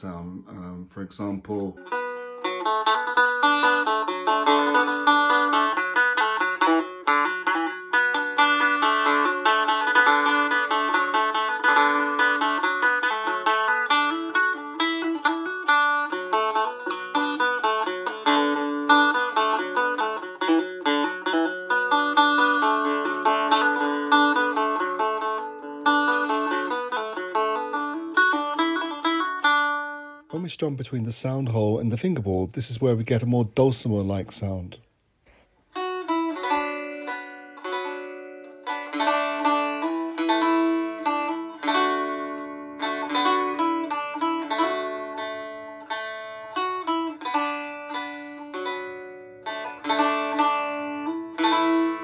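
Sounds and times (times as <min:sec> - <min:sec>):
stick dulcimer melody: 0:35.8 - 0:52.0.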